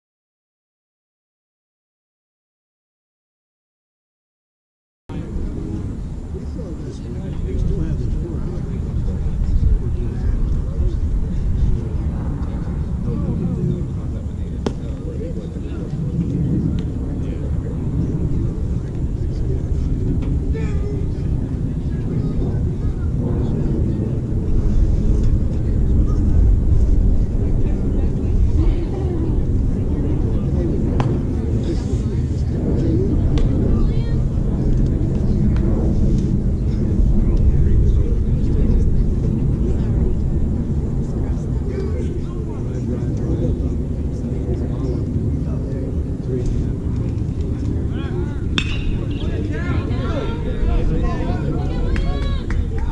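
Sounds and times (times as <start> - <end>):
distant voices of players: 5.1 - 52.9
steady low rumble: 5.1 - 52.9
sharp pop: 48.6 - 49.1.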